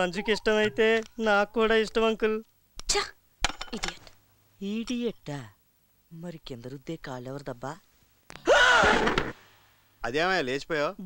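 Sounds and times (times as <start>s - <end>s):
man's loud breathy cry: 8.4s - 9.1s.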